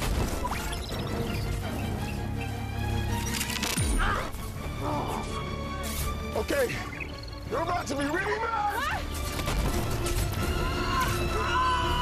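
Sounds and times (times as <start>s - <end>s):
dramatic film score: 0.0s - 12.0s.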